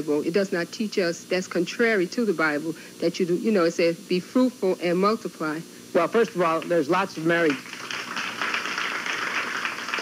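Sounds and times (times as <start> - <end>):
audience applauding: 7.5 - 10.0.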